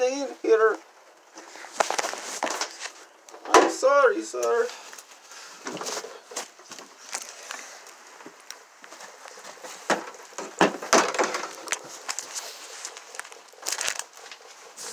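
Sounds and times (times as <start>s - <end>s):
phone rustling against clothing: 1.4s - 3.2s, 11.3s - 14.9s.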